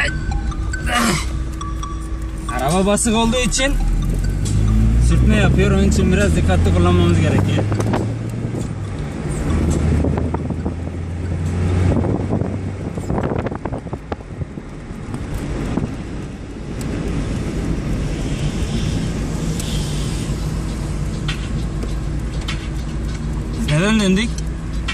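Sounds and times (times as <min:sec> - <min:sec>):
car engine running: 0:00.0 - 0:24.9
road noise: 0:00.0 - 0:24.9.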